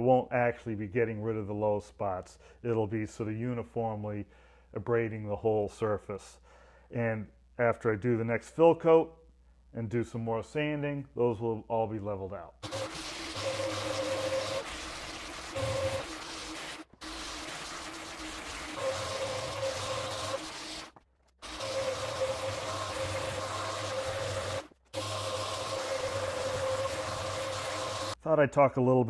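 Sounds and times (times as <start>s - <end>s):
orbital sander whirring: 12.6s - 28.2s.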